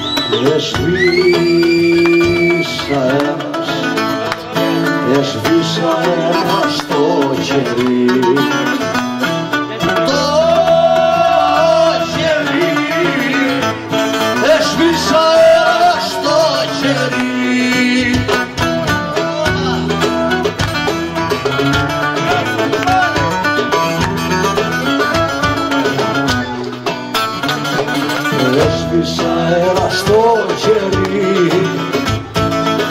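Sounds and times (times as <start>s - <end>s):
man singing: 0.0s - 20.4s, 28.1s - 32.9s
acoustic guitar: 0.0s - 32.9s.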